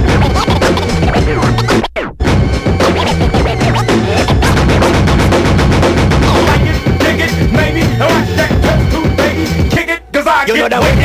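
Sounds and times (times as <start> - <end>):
hip hop beat: 0.0 - 11.0
turntable scratching: 0.0 - 11.0.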